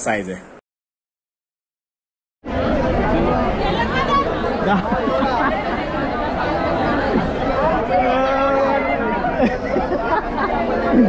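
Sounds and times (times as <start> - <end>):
crowd chatter: 2.4 - 11.0.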